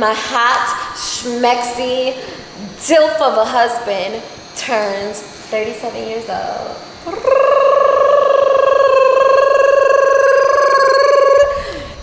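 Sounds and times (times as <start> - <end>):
man holding high buzzy note: 7.0 - 12.0.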